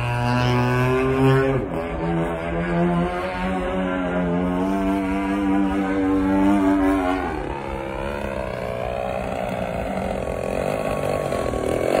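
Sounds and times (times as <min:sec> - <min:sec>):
model jet motor whine: 0:00.0 - 0:12.0.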